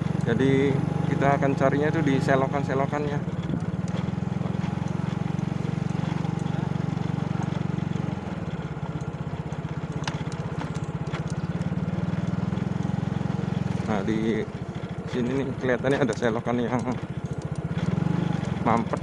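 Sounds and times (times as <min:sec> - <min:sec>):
small motorcycle engine running: 0:00.0 - 0:19.0.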